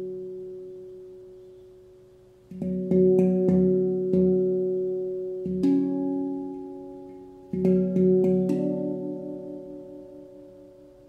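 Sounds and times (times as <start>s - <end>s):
handpan notes ringing: 0.0s - 11.0s.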